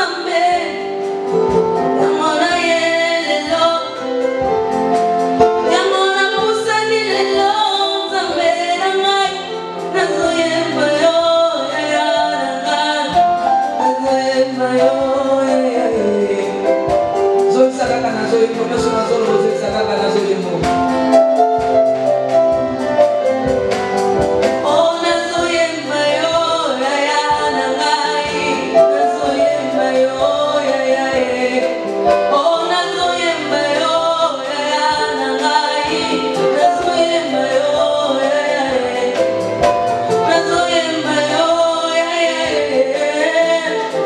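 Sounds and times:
woman singing into microphone: 0.0 - 4.5, 5.5 - 21.2, 24.6 - 44.0
instrumental accompaniment: 0.0 - 44.0.

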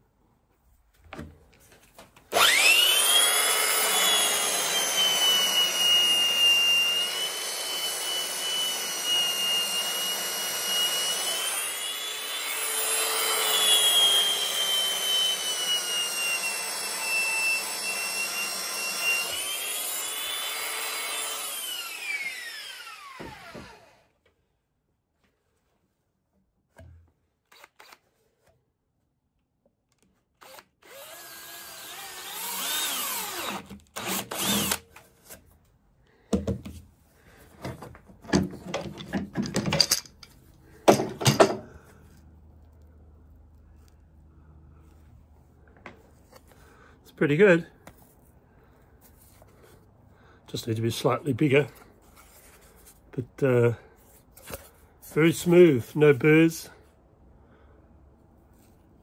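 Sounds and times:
belt sander on plastic: 2.3 - 24.1, 30.9 - 35.4.

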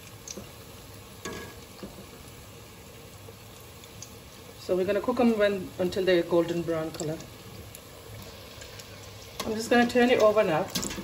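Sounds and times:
patties deep-frying in oil: 0.0 - 11.0.

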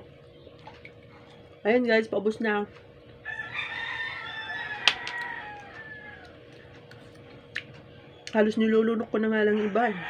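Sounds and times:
rooster crowing: 3.2 - 6.5, 9.5 - 10.0.

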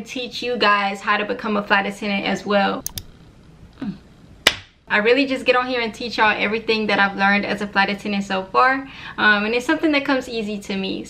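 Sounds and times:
sharp slap-like click: 4.5 - 4.8.

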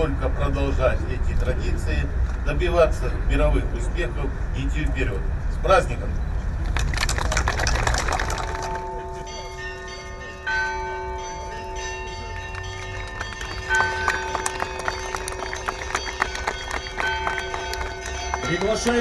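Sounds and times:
applause: 6.6 - 9.0, 12.3 - 19.0
bells ringing: 8.3 - 19.0.

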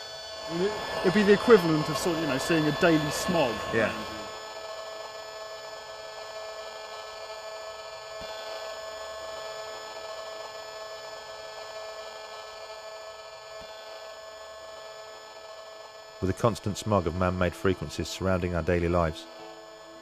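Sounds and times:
constant electronic tones: 0.0 - 20.0
electronic buzz and hiss: 0.0 - 20.0.

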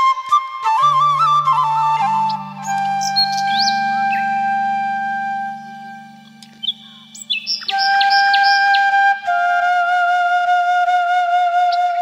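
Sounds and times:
flute notes: 0.0 - 12.0
bird chirps: 2.0 - 9.1.

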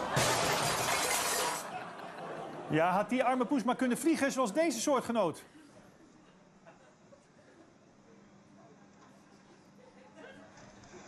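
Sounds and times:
crash with clattering: 0.0 - 1.7.

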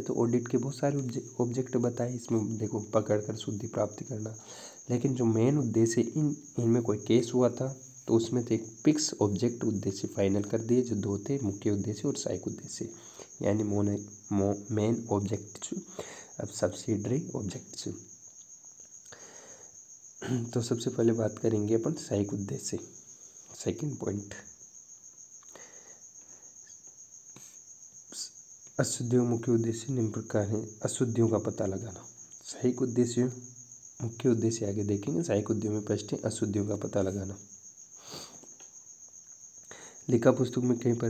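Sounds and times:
cricket trilling: 0.0 - 41.0
low background noise: 0.0 - 41.0.

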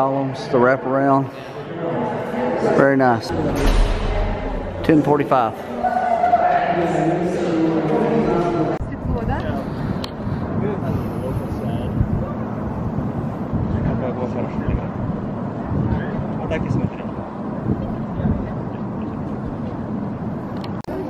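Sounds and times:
people's voices: 0.0 - 19.4
low rumble: 3.3 - 5.8.

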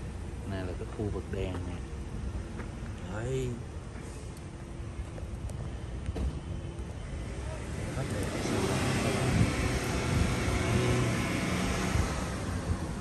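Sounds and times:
vehicle passing by: 7.2 - 13.0.

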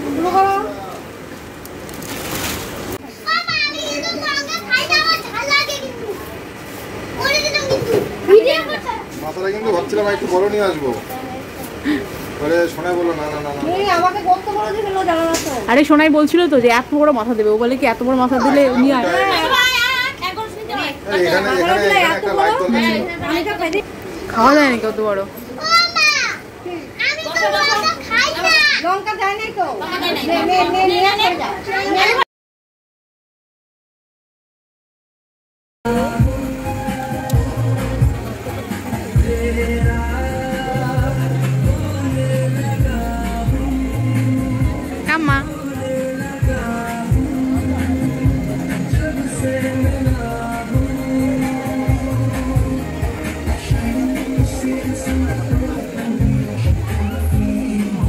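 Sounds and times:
children calling out and chattering: 2.4 - 15.8, 18.2 - 24.5, 25.2 - 32.2, 35.9 - 58.0
child talking: 3.1 - 6.4, 7.2 - 9.2, 18.4 - 20.8, 25.5 - 32.2.

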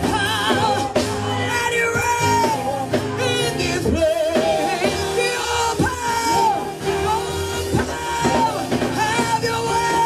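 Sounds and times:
band backing: 0.0 - 10.0
women singing gospel: 0.0 - 10.0.

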